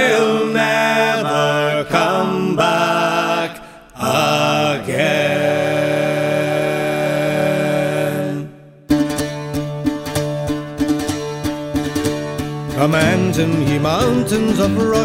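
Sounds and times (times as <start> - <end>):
men singing in harmony: 0.0 - 8.6, 12.9 - 15.0
plucked strings: 8.9 - 15.0.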